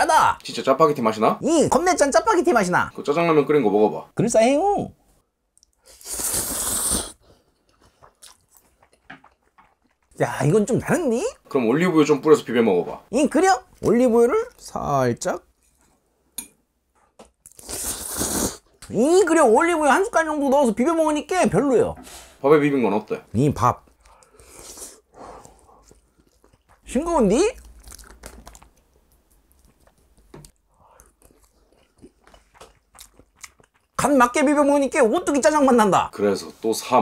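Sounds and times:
person chewing: 0:05.5 - 0:10.2, 0:17.1 - 0:18.9, 0:23.8 - 0:34.0
loud slurp of noodles: 0:05.8 - 0:07.2, 0:17.5 - 0:18.6.

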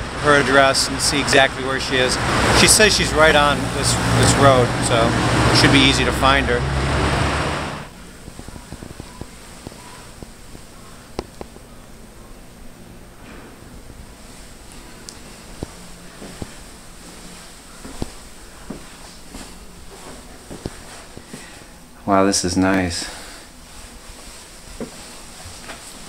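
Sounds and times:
faint steady hum: 0:07.8 - 0:26.0
footsteps: 0:08.2 - 0:11.6, 0:14.2 - 0:21.7, 0:23.6 - 0:26.0.

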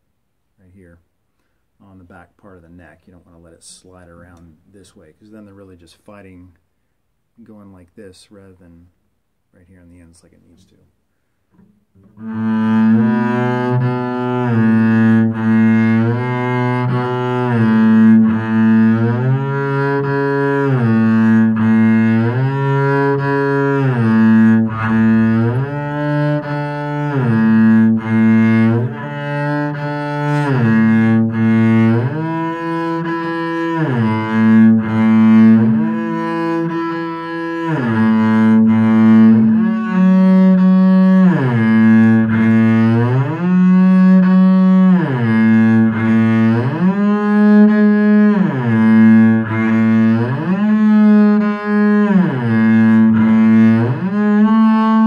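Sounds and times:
bowed double bass: 0:09.6 - 0:55.0.

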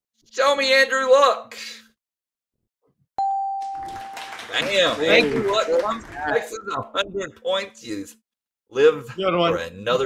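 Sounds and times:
bell-like ding: 0:03.2 - 0:03.9.

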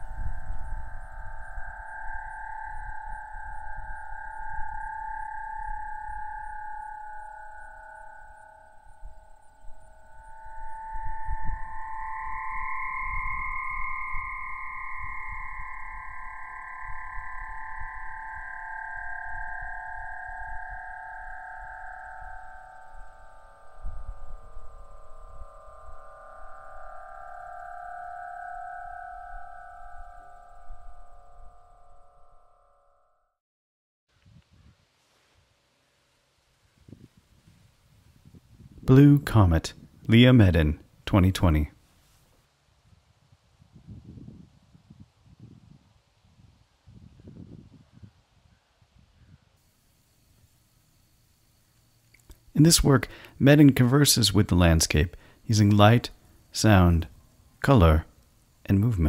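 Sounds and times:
wind noise: 0:00.0 - 0:05.1, 0:23.6 - 0:26.1, 0:34.1 - 0:35.5, 0:36.6 - 0:49.6
aeolian harp tones: 0:00.0 - 0:33.0, 0:51.8 - 0:59.0.

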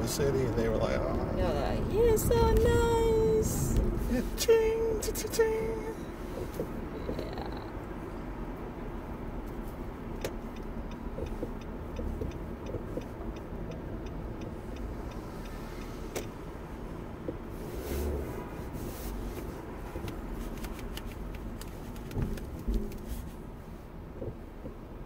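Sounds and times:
car interior road rumble: 0:00.0 - 0:25.0
turn signal clicking: 0:01.9 - 0:18.2, 0:19.2 - 0:23.4, 0:24.1 - 0:25.0.

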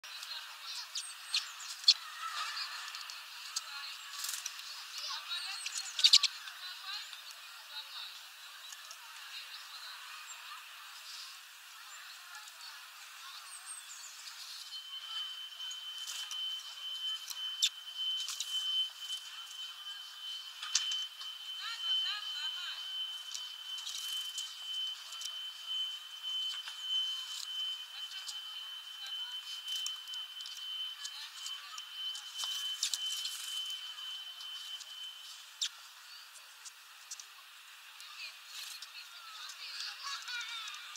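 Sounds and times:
small birds chirping: 0:00.1 - 0:37.4
steady thin high tone: 0:00.2 - 0:40.9.

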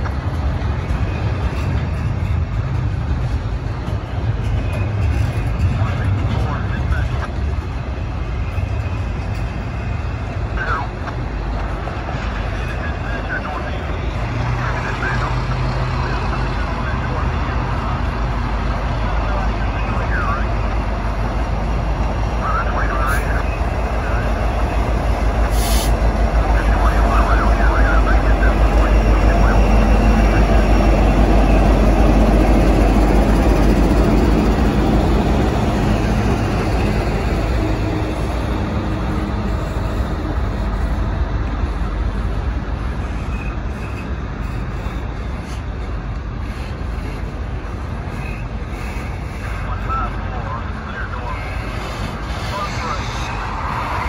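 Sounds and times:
diesel locomotive engines rumbling: 0:00.0 - 0:54.0
train wheel and rail noise: 0:00.0 - 0:54.0.

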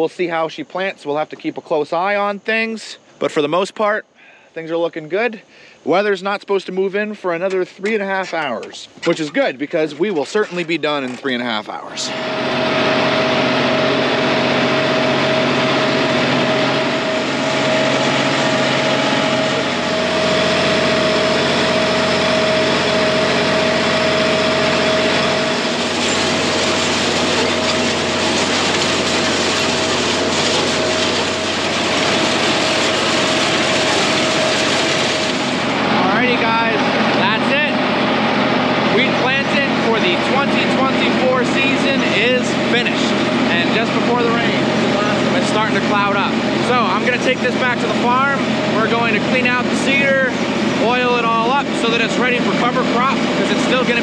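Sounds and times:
tractor engine humming: 0:07.2 - 0:54.0.

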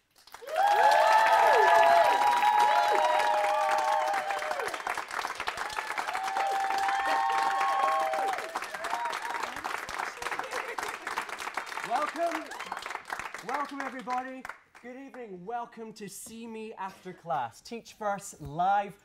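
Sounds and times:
audience applauding: 0:00.0 - 0:15.1
whoops and cheers: 0:00.4 - 0:11.0, 0:12.2 - 0:13.0.

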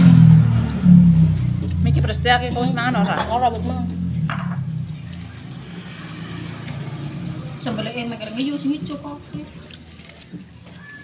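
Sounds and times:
motor vehicle engine humming: 0:00.0 - 0:10.6.

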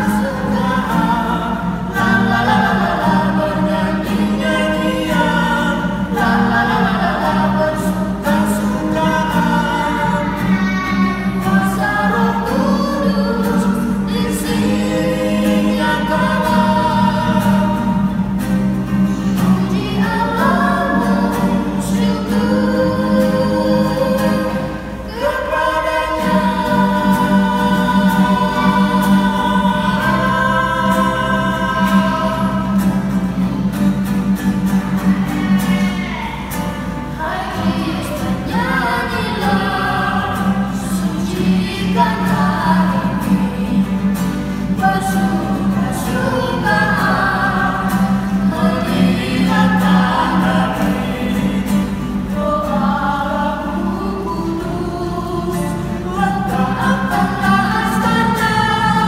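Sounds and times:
woman and children singing a hymn: 0:00.0 - 0:34.2, 0:34.9 - 0:59.0
strummed acoustic guitar: 0:00.0 - 0:59.0.

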